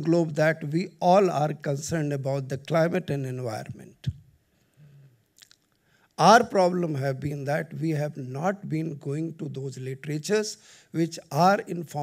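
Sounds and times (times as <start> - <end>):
lip smacks: 5.4 - 5.8
sharp mouth click: 5.4 - 5.8.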